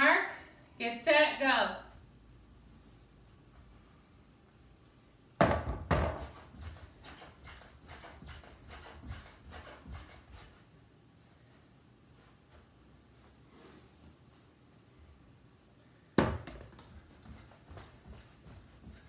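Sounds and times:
sharp knocks: 0:05.4 - 0:06.4
feet thumping on floor: 0:16.2 - 0:19.0.

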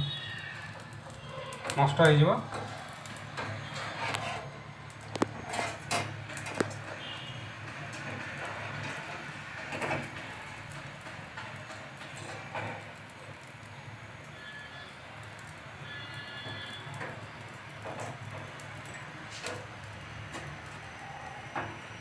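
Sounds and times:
gas burner flame hissing: 0:00.0 - 0:22.0
metal tongs clicking on grill: 0:04.9 - 0:06.9.

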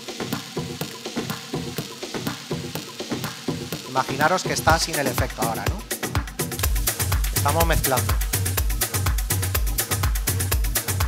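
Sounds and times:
techno track with hi-hat ticks: 0:00.0 - 0:11.0.

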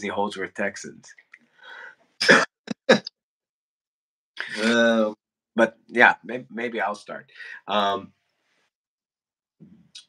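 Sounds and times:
man coughing: 0:02.2 - 0:03.1, 0:04.4 - 0:05.0.

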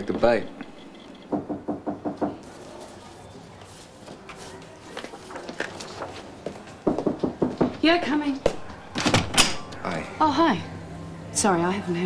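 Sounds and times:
footsteps crossing a room: 0:02.1 - 0:07.8.

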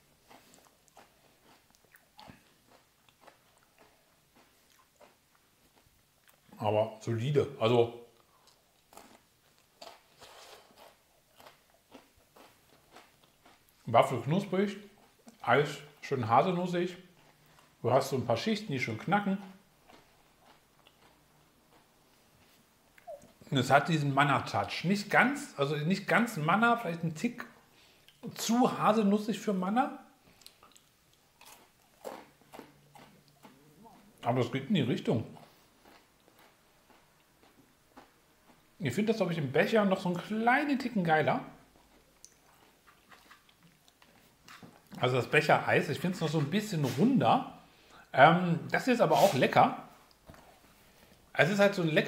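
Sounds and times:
chewing crisp wafer cone: 0:00.2 - 0:06.6, 0:08.1 - 0:16.0, 0:16.9 - 0:18.2, 0:19.3 - 0:23.5, 0:30.2 - 0:34.3, 0:35.3 - 0:38.7, 0:41.5 - 0:45.0.

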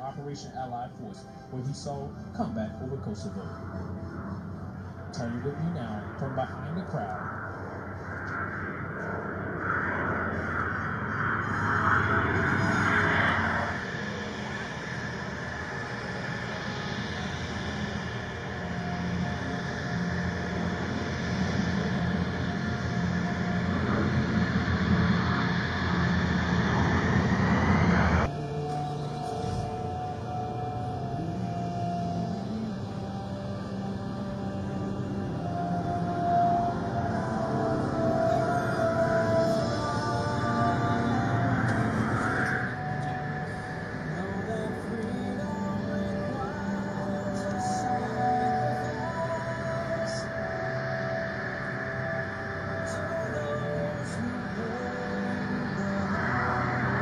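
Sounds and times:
aircraft engines droning overhead: 0:00.0 - 0:57.0
music with long held tones: 0:00.0 - 0:57.0.

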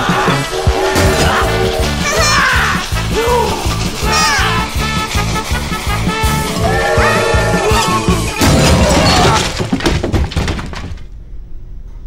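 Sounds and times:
cartoon music: 0:00.0 - 0:08.9
crash of shattering: 0:06.1 - 0:11.1
clattering knocks: 0:07.8 - 0:11.2.

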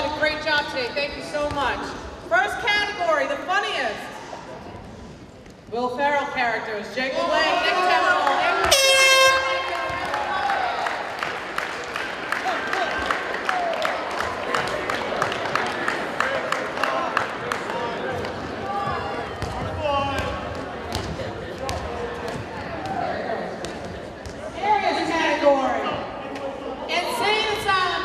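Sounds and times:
crowd voices and cheering: 0:06.9 - 0:28.0
loud horn blast: 0:08.6 - 0:09.9.

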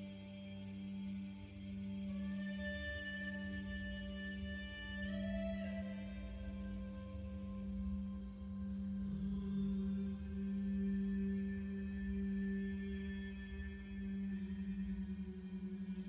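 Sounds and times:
meditation music drone: 0:00.0 - 0:16.0.

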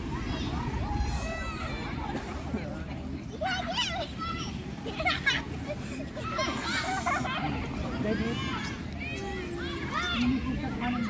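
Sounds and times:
children shouting and squealing: 0:00.0 - 0:02.6, 0:03.2 - 0:11.0.

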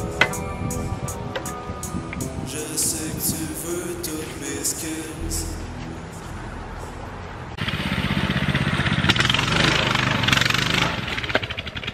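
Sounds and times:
small engine revving: 0:07.6 - 0:11.9.

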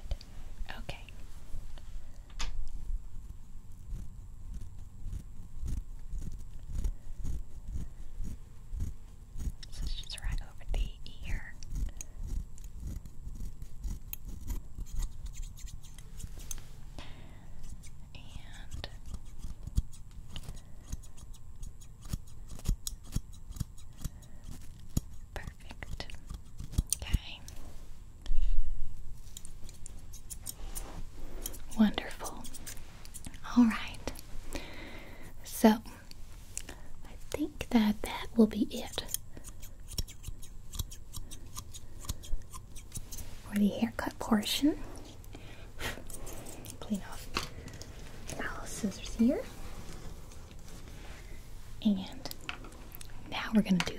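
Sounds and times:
scissors snipping hair: 0:02.6 - 0:10.2, 0:11.5 - 0:16.6, 0:17.5 - 0:18.0, 0:18.6 - 0:27.6, 0:29.2 - 0:33.4, 0:37.4 - 0:49.5.

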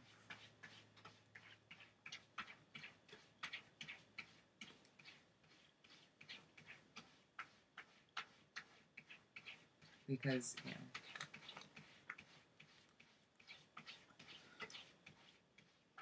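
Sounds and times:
cat scratching: 0:00.0 - 0:16.0.

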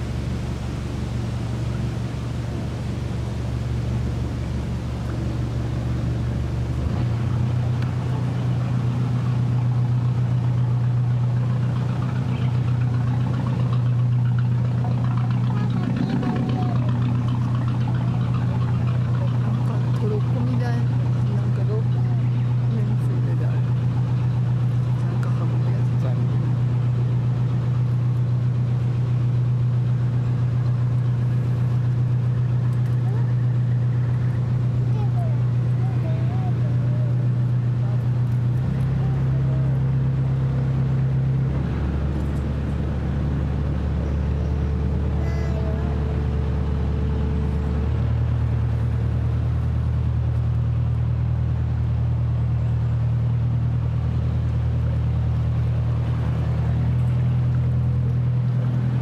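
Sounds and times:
boat engine droning: 0:00.0 - 0:59.0.

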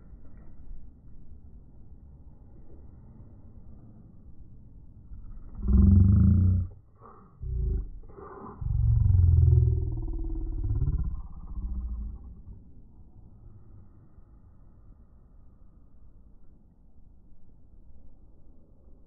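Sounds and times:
slowed-down deep voice roaring: 0:05.1 - 0:12.8.

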